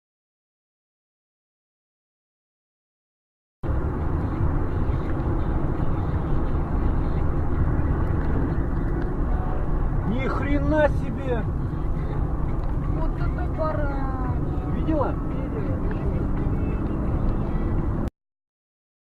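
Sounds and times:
car road and engine noise: 0:03.6 - 0:18.1
person's voice: 0:10.0 - 0:11.5, 0:12.8 - 0:16.9.

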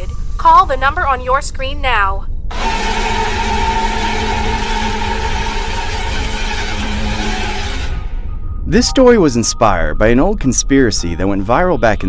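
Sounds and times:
soundtrack drone with hiss: 0:00.0 - 0:12.0.

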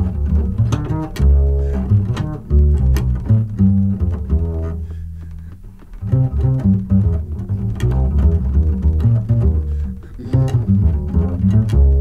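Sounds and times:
walking double bass: 0:00.0 - 0:12.0.

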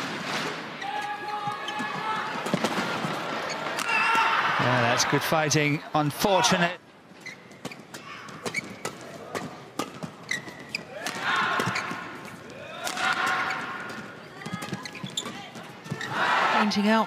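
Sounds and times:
crowd noise: 0:00.0 - 0:17.0
rackets hitting shuttlecock: 0:07.6 - 0:15.4.

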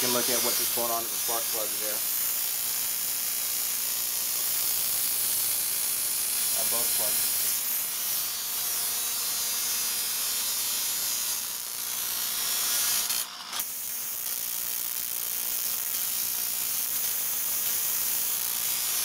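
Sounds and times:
spark plugs firing: 0:00.0 - 0:08.4, 0:12.7 - 0:19.0.

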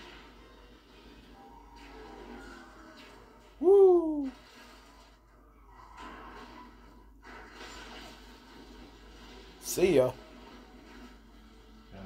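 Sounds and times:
film soundtrack from tv: 0:00.0 - 0:12.0
wordless vocal exclamation: 0:03.6 - 0:04.3.

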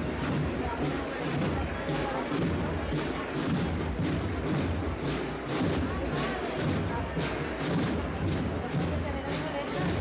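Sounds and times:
murmuring crowd: 0:00.0 - 0:10.0
procession drums beating: 0:00.0 - 0:10.0.

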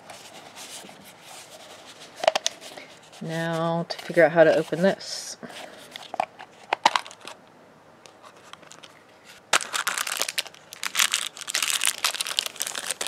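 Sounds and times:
plastic wrapper crinkling: 0:09.5 - 0:13.0.

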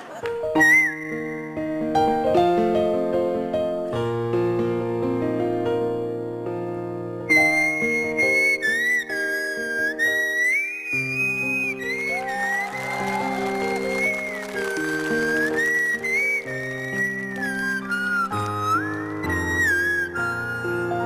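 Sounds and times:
held keyboard chords: 0:11.7 - 0:21.0.

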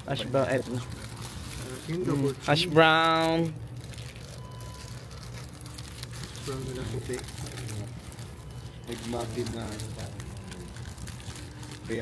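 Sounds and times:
paper wrappers rustling: 0:00.0 - 0:12.0.

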